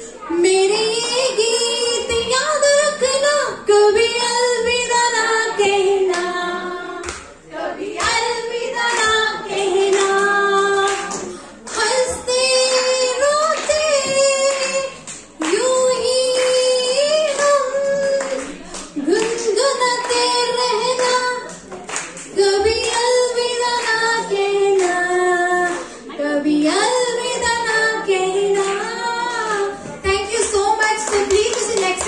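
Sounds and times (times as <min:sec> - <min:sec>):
woman singing into microphone: 0:00.0 - 0:21.7, 0:22.3 - 0:32.0.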